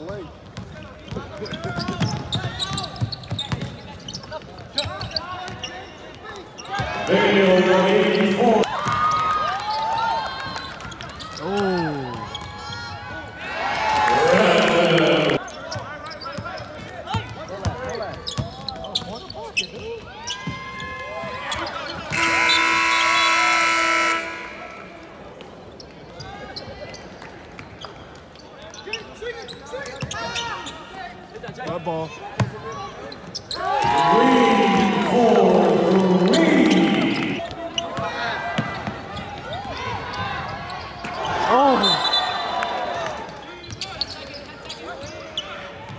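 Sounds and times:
players and spectators shouting: 0:06.8 - 0:09.0, 0:11.4 - 0:15.4, 0:33.6 - 0:38.9, 0:39.5 - 0:43.2
arena horn blast: 0:07.1 - 0:08.7, 0:22.1 - 0:24.9, 0:34.0 - 0:37.4.

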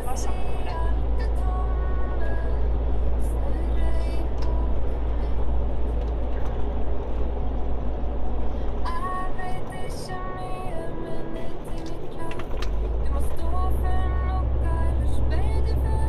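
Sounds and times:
radio playing speech and music: 0:00.0 - 0:01.1
vehicle rumble from inside cab: 0:00.0 - 0:16.0.

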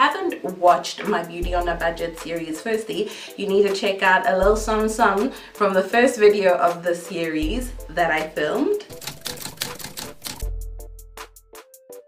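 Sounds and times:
background music: 0:00.0 - 0:12.0
typewriter key clicking: 0:08.9 - 0:10.5.

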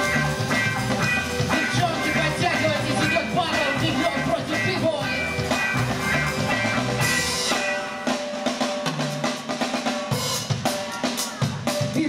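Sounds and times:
live band playing upbeat groove: 0:00.0 - 0:12.0.

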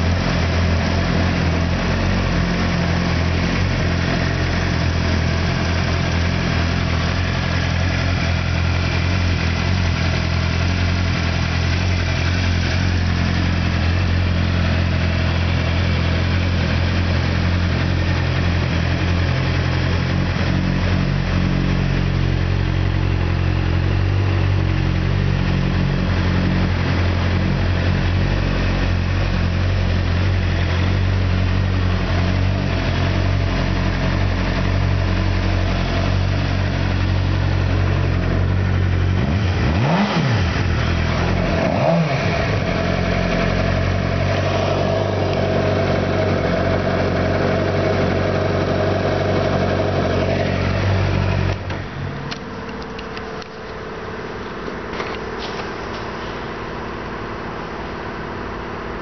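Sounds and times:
motorcycle engine idling and revving: 0:00.0 - 0:59.0.

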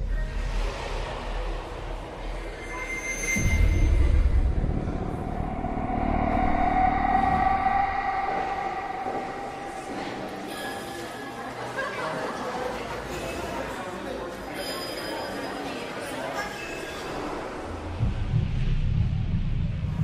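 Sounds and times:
low rumble: 0:00.0 - 0:11.6
long steady whine: 0:03.4 - 0:11.4.

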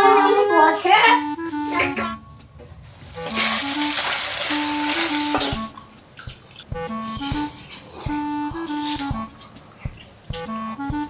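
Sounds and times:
light background music: 0:00.0 - 0:11.0
food sizzling in hot oil: 0:03.1 - 0:05.6.

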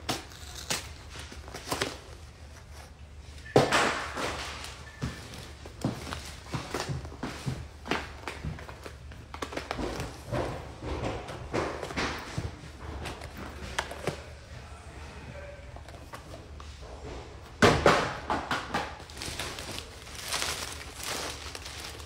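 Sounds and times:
rustling: 0:19.0 - 0:22.0.

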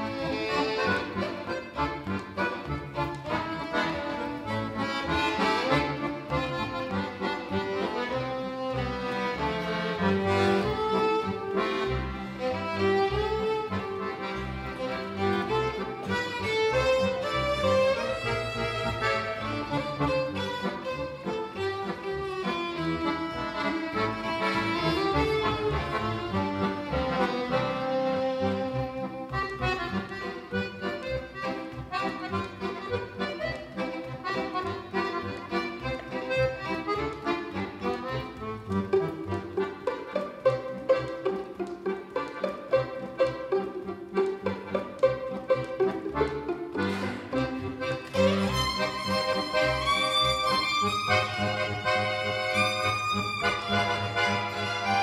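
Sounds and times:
accordion chords: 0:00.0 - 0:55.0
violin melody: 0:00.0 - 0:55.0.

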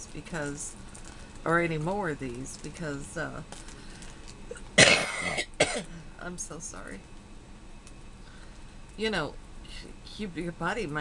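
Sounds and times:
woman coughing: 0:04.5 - 0:06.0.

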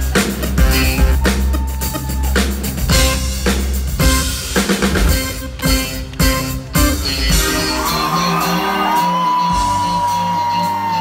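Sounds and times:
live band dance groove: 0:00.0 - 0:11.0.

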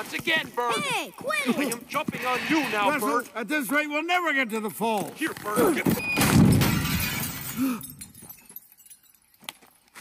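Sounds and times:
light metallic jingling: 0:02.9 - 0:05.4, 0:07.0 - 0:10.0.

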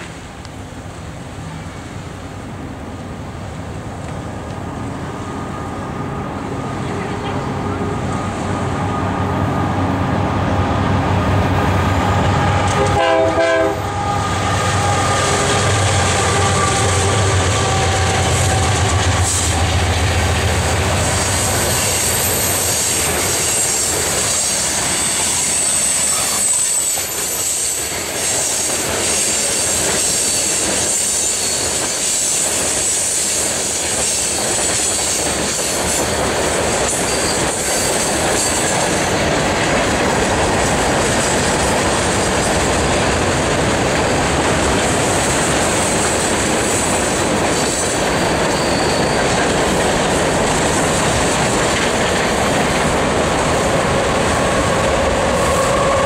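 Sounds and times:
freight train rumble and clatter: 0:00.0 - 0:56.0
train horn: 0:11.2 - 0:19.7, 0:24.9 - 0:28.2, 0:54.6 - 0:56.0
high wheel squeal: 0:21.1 - 0:33.4, 0:35.9 - 0:38.7, 0:47.6 - 0:49.5.

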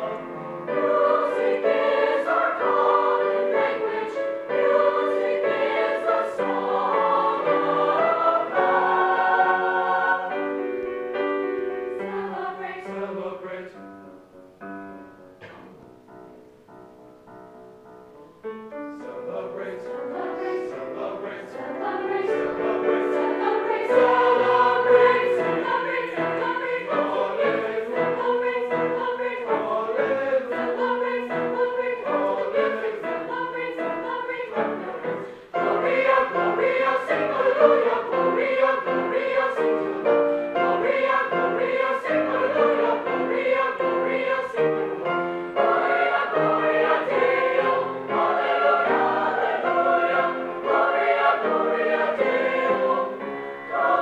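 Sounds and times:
mixed choir singing: 0:00.0 - 0:13.9, 0:19.0 - 0:54.0
piano accompaniment: 0:00.0 - 0:54.0.

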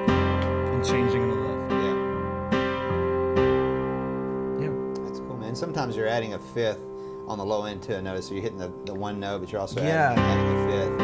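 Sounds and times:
digital piano chords ringing: 0:00.0 - 0:11.0.

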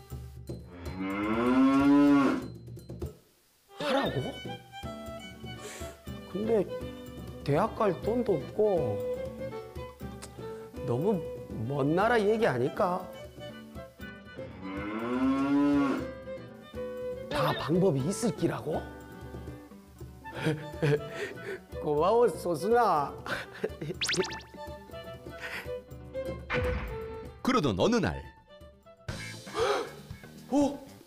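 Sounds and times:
soft background music: 0:00.0 - 0:31.0
cow mooing: 0:00.7 - 0:02.5, 0:14.5 - 0:16.1.

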